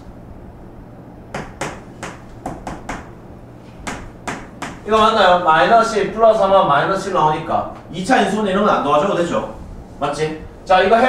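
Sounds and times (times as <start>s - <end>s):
chalk tapping on blackboard: 1.4s - 3.1s, 3.8s - 4.8s.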